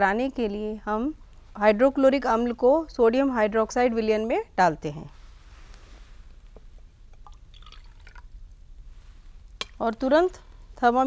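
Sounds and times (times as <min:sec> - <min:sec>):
liquid trickling and splashing: 0:07.2 - 0:08.3.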